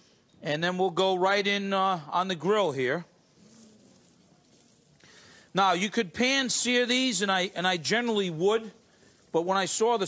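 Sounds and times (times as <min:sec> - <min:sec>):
faint background hiss: 0:00.0 - 0:10.0
person speaking: 0:00.4 - 0:10.0.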